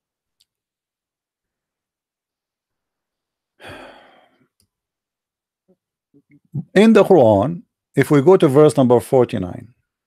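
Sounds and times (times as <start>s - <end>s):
man sighing: 3.6s - 4.4s.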